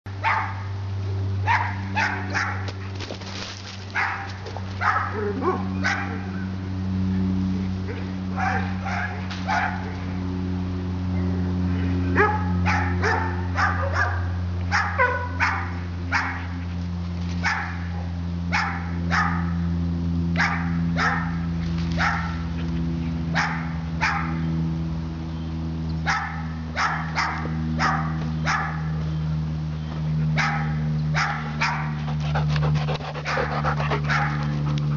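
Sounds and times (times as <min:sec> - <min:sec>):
steady low hum: 0:00.1 - 0:34.9
dog barking: 0:00.2 - 0:00.6, 0:01.4 - 0:02.7, 0:04.0 - 0:06.3, 0:08.4 - 0:09.9, 0:12.2 - 0:16.5, 0:17.4 - 0:17.9, 0:18.5 - 0:19.6, 0:20.4 - 0:21.4, 0:22.0 - 0:22.4, 0:23.3 - 0:24.4, 0:26.0 - 0:28.9, 0:30.4 - 0:32.0, 0:33.2 - 0:34.4.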